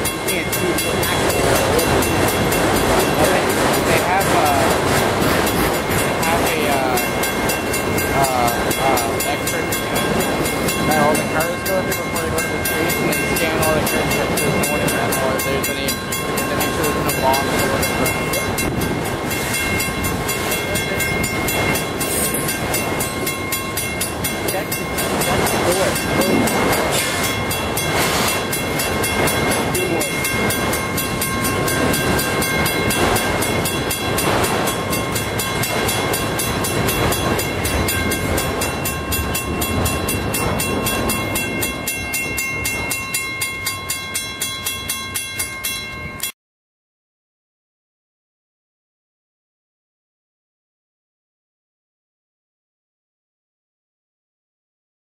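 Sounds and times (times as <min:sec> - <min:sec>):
train wheels clicking: 0:00.0 - 0:45.5
train wheels rumbling on rail: 0:00.0 - 0:46.0.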